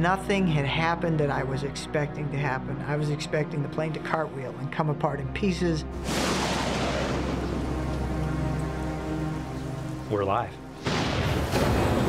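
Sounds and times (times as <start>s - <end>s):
low music drone: 5.9s - 11.0s
thunderclap: 6.0s - 8.6s, 10.8s - 12.0s
rain-like hiss: 6.0s - 12.0s.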